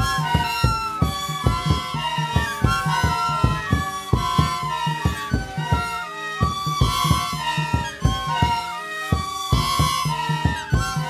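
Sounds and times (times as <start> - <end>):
reed pipes playing: 0.0 - 11.0
steady drum beat: 0.0 - 11.0.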